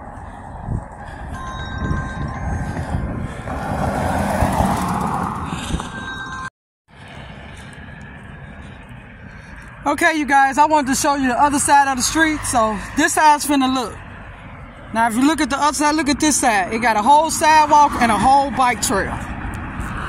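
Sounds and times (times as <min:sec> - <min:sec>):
steady traffic rush: 0:00.0 - 0:20.0
vehicle passing: 0:00.0 - 0:20.0.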